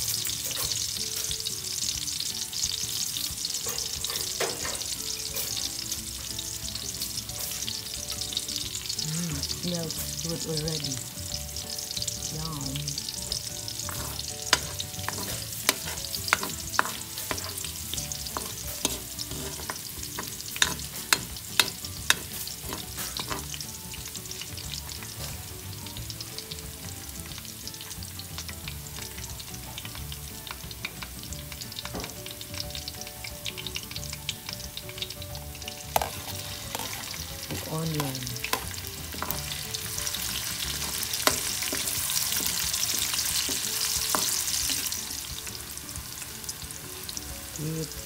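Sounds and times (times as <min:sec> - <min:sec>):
garlic sizzling in oil: 0:00.0 - 0:48.0.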